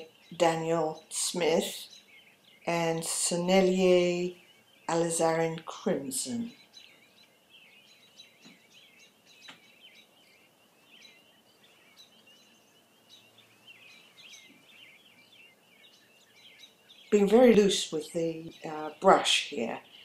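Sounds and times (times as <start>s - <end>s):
small bird twittering: 0.0s - 5.7s, 6.3s - 19.2s.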